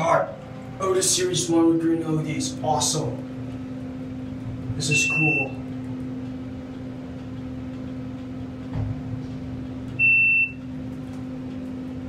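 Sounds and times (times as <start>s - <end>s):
elevator hydraulic drive hum: 0.0s - 12.0s
short high electronic beep: 4.9s - 5.6s.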